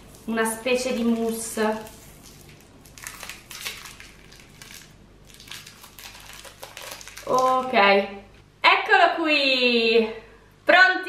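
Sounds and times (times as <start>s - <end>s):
candy wrapper crinkling: 0.0s - 7.9s.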